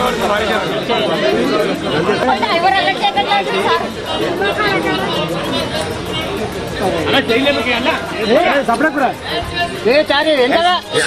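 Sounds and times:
people talking over each other: 0.0 - 11.0.

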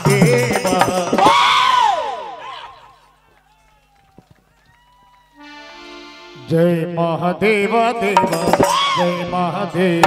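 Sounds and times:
band music: 0.0 - 2.5, 5.4 - 10.0
loud shout through sound system: 1.2 - 3.1.

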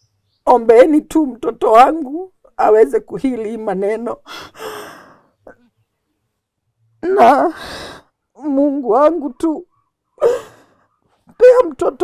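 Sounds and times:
woman crying: 10.2 - 10.6.

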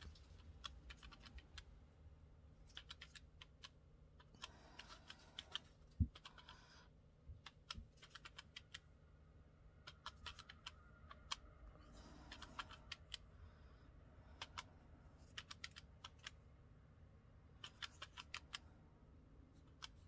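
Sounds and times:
calculator keys clicking: 0.0 - 1.7, 2.7 - 6.6, 7.4 - 8.8, 9.8 - 11.5, 12.3 - 13.2, 14.4 - 16.4, 17.6 - 18.6.

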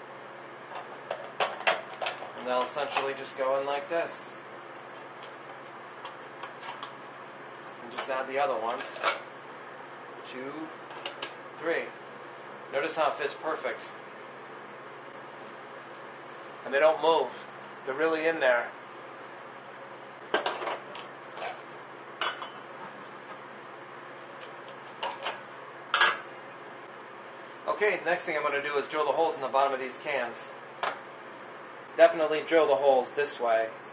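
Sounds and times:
steady low hum: 0.0 - 33.9.

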